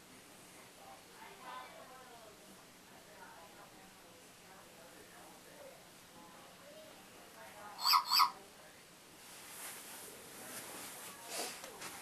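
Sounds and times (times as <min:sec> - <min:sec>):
high electronic chirps: 0:07.8 - 0:08.3.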